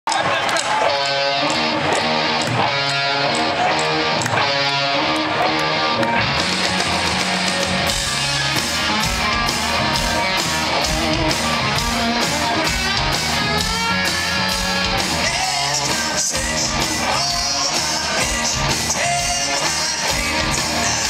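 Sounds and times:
electric guitar riff: 0.2 - 21.0
drums with steady beat: 6.0 - 21.0.

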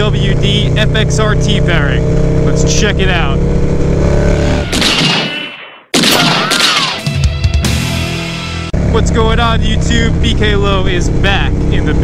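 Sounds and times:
motorcycle engine: 0.0 - 4.9, 7.2 - 12.0.

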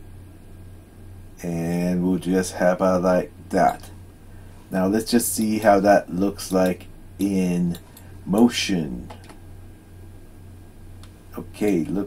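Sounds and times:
low hum: 0.0 - 12.0
computer mouse clicks: 9.0 - 9.4.

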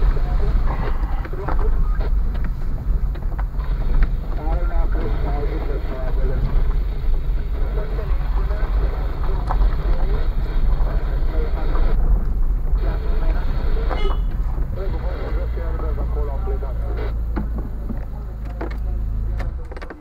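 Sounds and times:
car engine and tyre rumble: 0.0 - 20.0.

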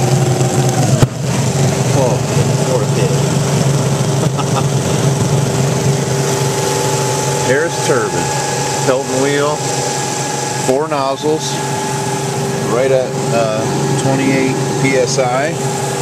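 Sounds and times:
turbine hum and whine: 0.0 - 16.0.

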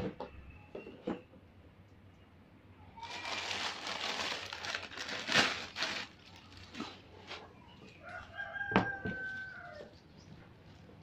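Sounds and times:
rooster crowing: 8.0 - 9.9.

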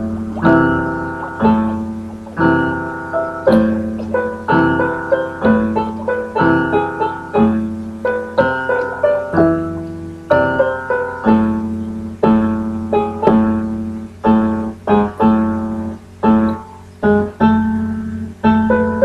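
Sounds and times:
slow solo piano chords: 0.0 - 19.0.

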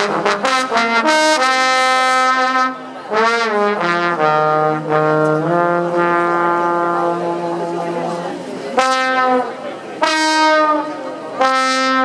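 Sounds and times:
trombone notes sliding down: 0.0 - 12.0.

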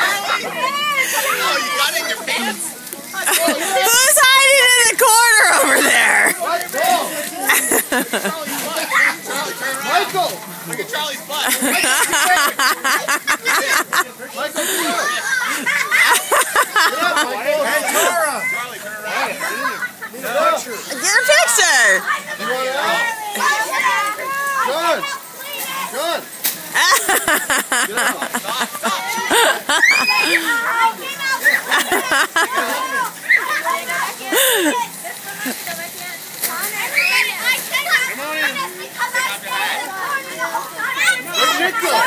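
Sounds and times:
children shouting and laughing: 0.0 - 42.0
plastic sheeting crinkling: 33.6 - 39.8.

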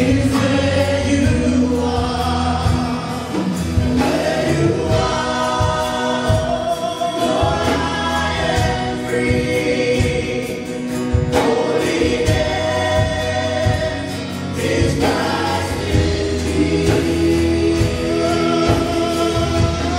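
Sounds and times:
guitars: 0.0 - 19.9
keyboard: 0.0 - 19.9
people singing together: 0.0 - 19.9
steady drum beat: 0.0 - 19.9.

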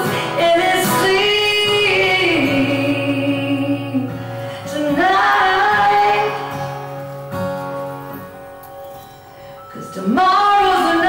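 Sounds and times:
woman singing country ballad: 0.0 - 7.0, 9.7 - 11.0
acoustic guitar strumming: 0.0 - 11.0.

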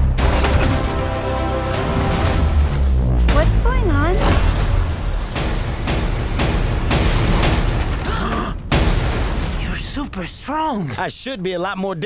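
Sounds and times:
sharp hits: 2.0 - 10.1.

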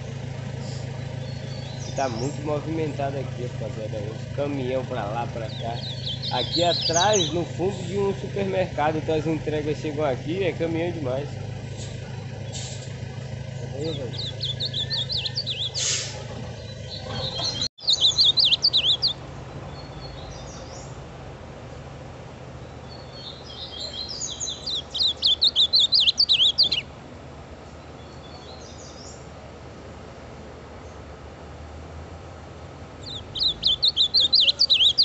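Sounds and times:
bird singing warbled song: 0.0 - 21.1, 22.6 - 27.0, 27.7 - 29.3, 33.0 - 35.0.

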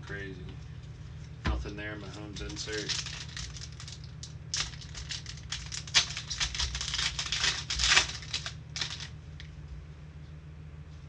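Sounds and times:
plastic wrapper tearing and crinkling: 2.4 - 9.1.

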